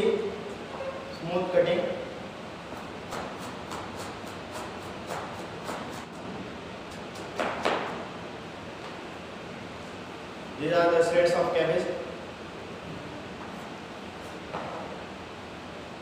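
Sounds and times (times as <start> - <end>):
steady background hiss: 0.0 - 16.0.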